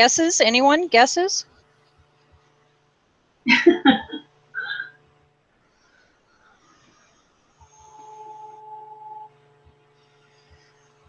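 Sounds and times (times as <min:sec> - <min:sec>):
heat tool motor hum: 0:03.6 - 0:11.0.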